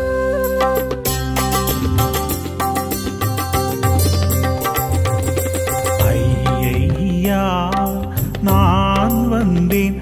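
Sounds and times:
percussion strokes: 0:00.4 - 0:10.0
steady bass: 0:01.0 - 0:10.0.

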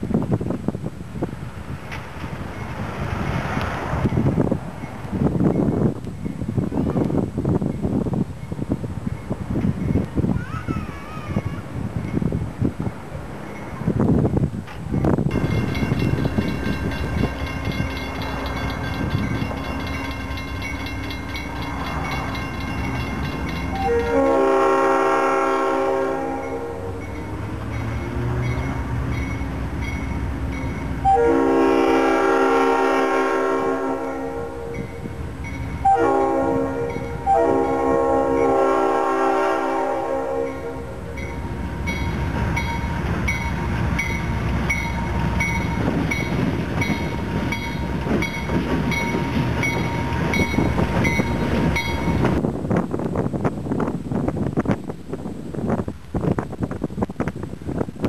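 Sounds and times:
locomotive engine and wheels: 0:00.0 - 0:58.0
crossing bell ringing: 0:15.3 - 0:25.0, 0:25.6 - 0:39.8, 0:40.4 - 0:52.4
locomotive air horn: 0:23.8 - 0:27.0, 0:31.0 - 0:34.8, 0:35.8 - 0:41.0.

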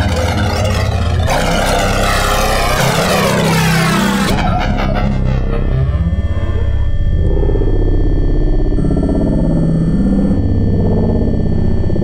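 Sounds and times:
falling pitch sweep: 0:00.0 - 0:09.0
deep bass: 0:00.0 - 0:12.0
distorted synthesizer drone: 0:00.0 - 0:12.0.

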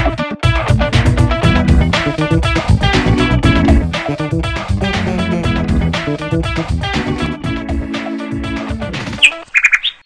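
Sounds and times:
background music with guitar: 0:00.0 - 0:09.5.

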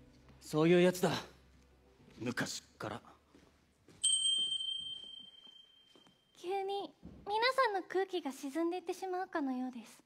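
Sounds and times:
high bell chime ringing: 0:04.0 - 0:06.2.

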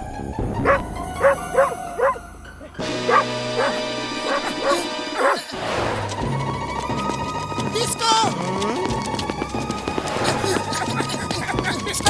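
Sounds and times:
background music: 0:00.0 - 0:12.0
cartoon dog barking: 0:00.6 - 0:02.2, 0:03.1 - 0:05.5.

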